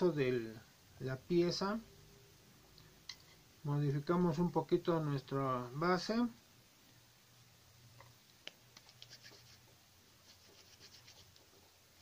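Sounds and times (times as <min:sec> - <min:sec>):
low steady hum: 0:00.0 - 0:12.0
fingers rubbing plasticine: 0:08.8 - 0:11.6.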